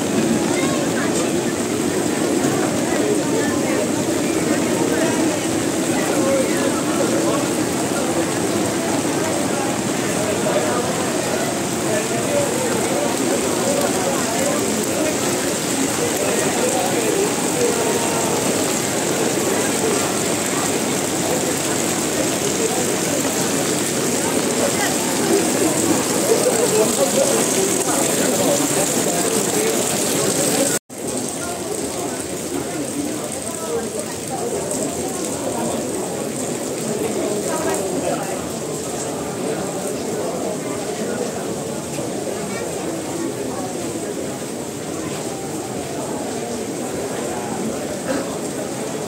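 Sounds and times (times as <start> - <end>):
crowd babble: 0.0 - 49.0.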